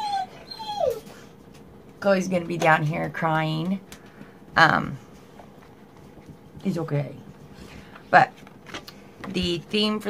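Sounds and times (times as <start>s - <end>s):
dog whining: 0.0s - 1.4s.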